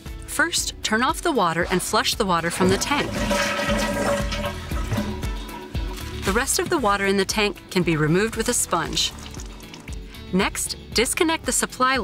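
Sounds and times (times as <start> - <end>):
toilet flushing: 1.5 - 7.2
water rushing into bowl: 1.5 - 7.2, 8.0 - 10.3.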